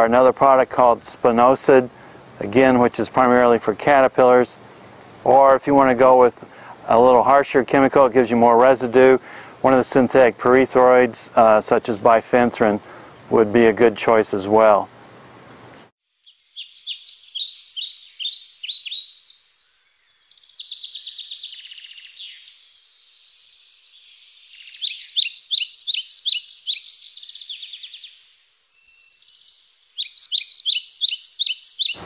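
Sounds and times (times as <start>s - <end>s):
songbirds chirping and trilling: 16.1s - 32.0s.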